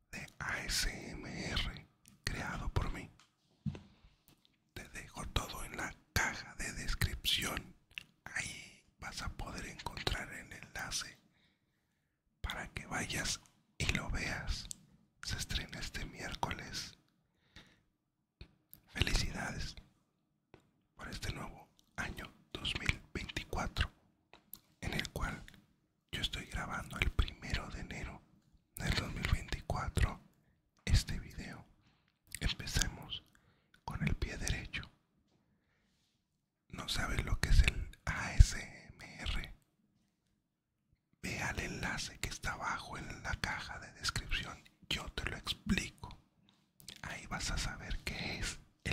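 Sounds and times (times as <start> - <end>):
man whispering: 0.0 - 3.3, 4.7 - 11.3, 12.4 - 17.8, 18.4 - 20.0, 20.6 - 35.1, 36.7 - 39.7, 41.2 - 48.9.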